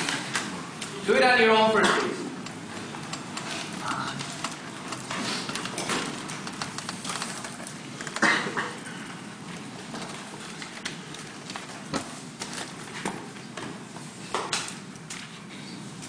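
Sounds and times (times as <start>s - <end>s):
clicks and knocks from desks: 2.4s - 9.0s, 9.8s - 15.3s.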